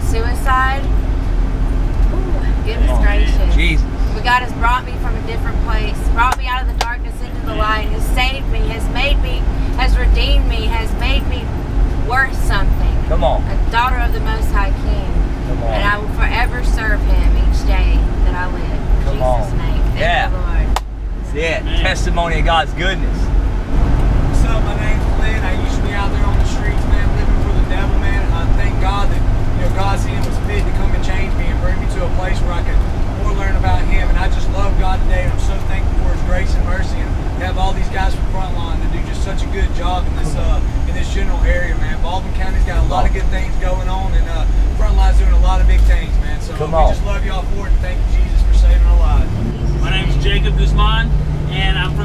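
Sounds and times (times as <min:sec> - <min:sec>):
woman speaking: 0:00.0 - 0:00.9, 0:02.2 - 0:20.8, 0:46.6 - 0:47.0
bus rumbling: 0:00.0 - 0:52.0
indistinct passenger voices: 0:00.0 - 0:52.0.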